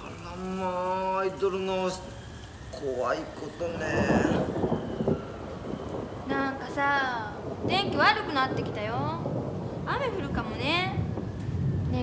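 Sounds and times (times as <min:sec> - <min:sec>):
thunder rumble: 0:00.0 - 0:12.0.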